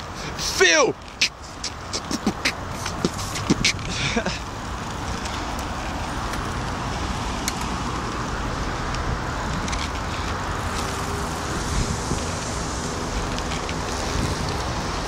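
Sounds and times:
road and tyre noise: 0:00.0 - 0:15.0
wind on microphone: 0:01.1 - 0:04.1, 0:09.0 - 0:15.0.

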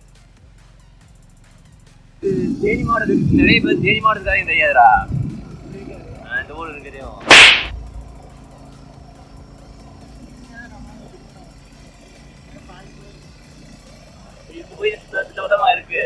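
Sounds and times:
sharp whooshing burst: 0:02.2 - 0:08.0
motorcycle engine hum: 0:02.2 - 0:16.0.

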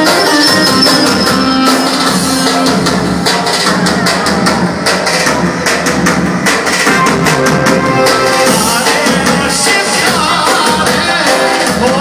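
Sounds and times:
electronic keyboard folk music: 0:00.0 - 0:05.6, 0:06.2 - 0:12.0
fast drum beat: 0:00.0 - 0:12.0.

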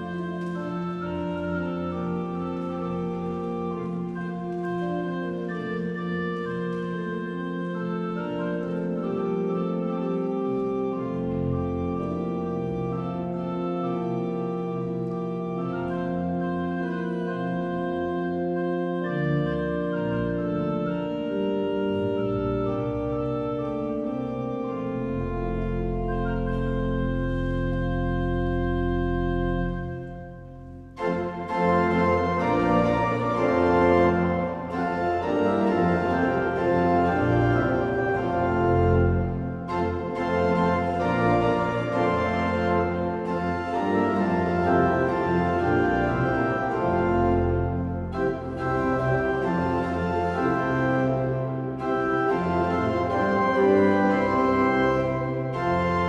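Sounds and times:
church pipe organ chords: 0:00.0 - 0:56.0.

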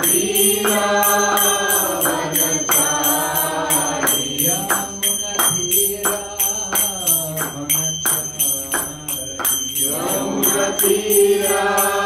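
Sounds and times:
hand cymbals ringing: 0:00.0 - 0:12.0
mantra chanting: 0:00.0 - 0:12.0.

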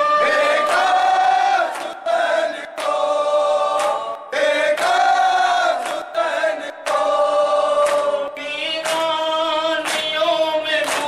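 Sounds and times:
man and boy singing unaccompanied: 0:07.3 - 0:11.0.

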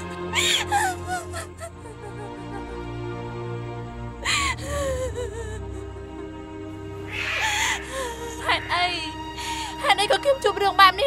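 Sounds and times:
woman sobbing: 0:00.0 - 0:03.4, 0:04.1 - 0:06.4, 0:07.2 - 0:10.4
background music: 0:00.0 - 0:11.0.

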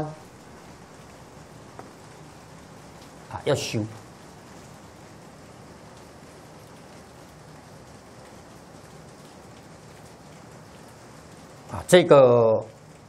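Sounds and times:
microphone background hiss: 0:00.0 - 0:13.0.

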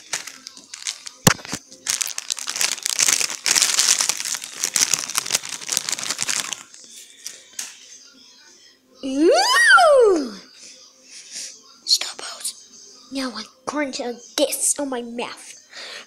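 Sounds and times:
wrapper snap: 0:00.0 - 0:06.8
plastic wrapper crinkling: 0:00.0 - 0:06.9.

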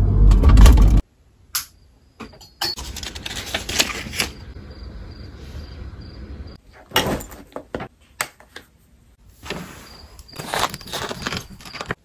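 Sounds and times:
calendar page flipping: 0:02.8 - 0:04.5, 0:09.4 - 0:12.0.

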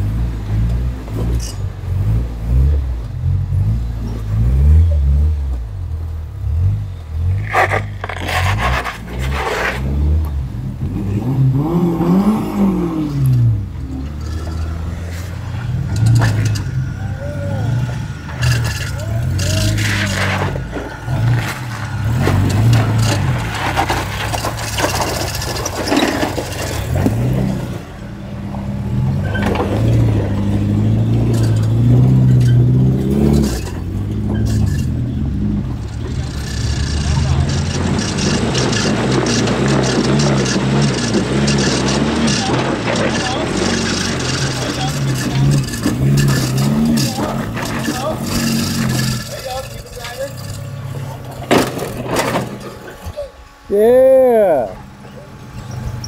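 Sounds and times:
small engines revving: 0:00.0 - 0:56.0
tyres scraping on rock: 0:07.3 - 0:10.1, 0:17.9 - 0:27.6, 0:36.0 - 0:53.2.

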